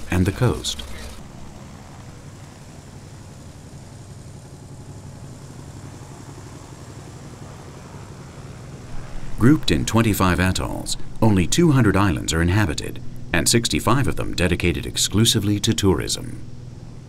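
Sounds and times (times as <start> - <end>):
propeller aircraft engine drone: 0.0 - 17.0.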